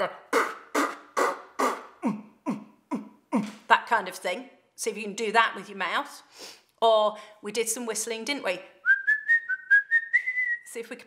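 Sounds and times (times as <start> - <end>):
woman beatboxing: 0.0 - 3.6.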